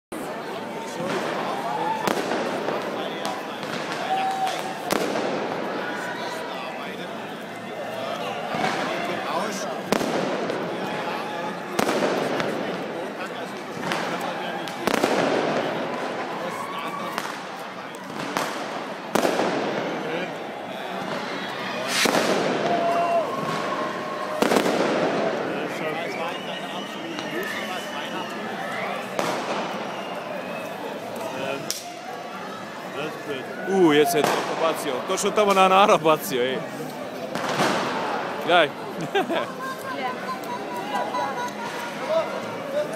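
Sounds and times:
people's voices: 0.1s - 42.9s
fireworks bangs echoing: 1.0s - 5.9s, 9.5s - 10.9s, 11.7s - 16.4s, 17.2s - 20.1s, 21.9s - 25.8s, 29.0s - 30.1s, 34.1s - 35.6s, 37.3s - 38.4s.

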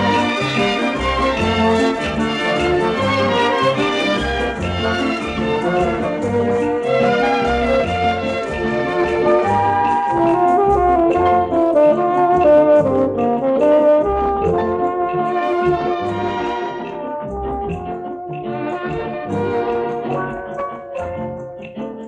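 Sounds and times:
orchestral dance music with brass: 0.0s - 20.4s.

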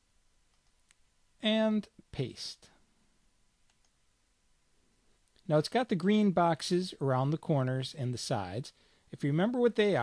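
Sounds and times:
very faint clicks: 0.5s - 1.1s, 3.6s - 4.0s.

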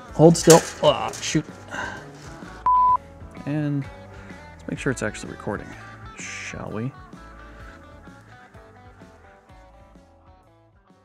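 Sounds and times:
short electronic beep: 2.6s - 3.0s.

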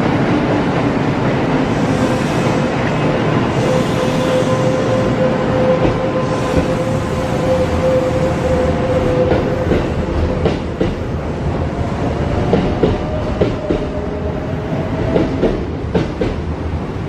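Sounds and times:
train running noise and whine: 0.0s - 17.0s
train wheels clacking over rail joints: 15.1s - 16.4s.

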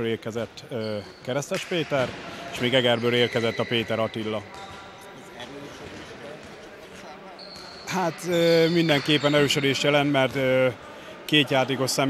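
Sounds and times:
balls bouncing on hall floor: 1.5s - 8.0s.

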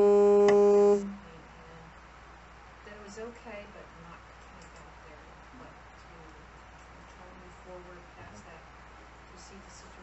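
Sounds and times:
loud low electronic buzz: 0.0s - 1.2s.

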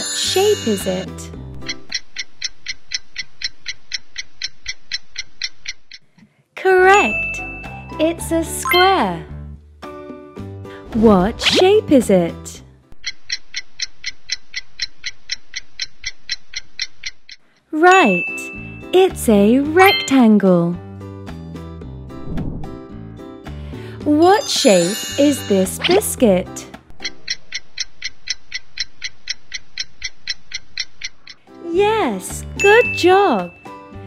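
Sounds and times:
clock ticking: 0.0s - 6.2s, 12.9s - 20.6s, 24.6s - 33.7s.

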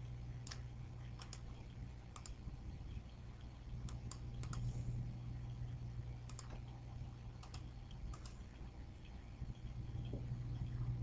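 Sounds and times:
steady low hum: 0.0s - 11.0s
computer mouse clicking: 0.4s - 1.5s, 2.1s - 2.4s, 3.8s - 4.7s, 6.2s - 6.7s, 7.4s - 8.4s.

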